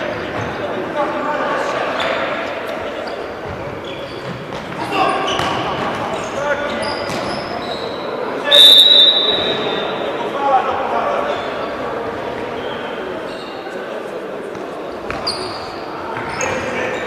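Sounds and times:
referee's whistle blast: 8.5 - 9.8.

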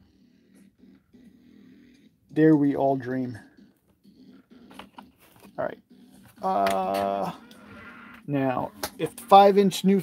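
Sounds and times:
person speaking: 6.4 - 7.5.

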